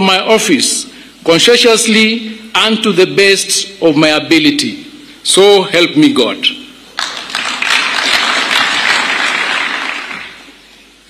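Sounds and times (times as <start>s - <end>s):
audience applauding: 7.0s - 10.6s.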